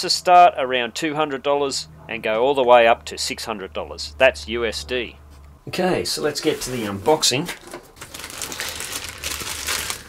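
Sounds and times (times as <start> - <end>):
plastic bag crinkling: 6.4 - 10.0.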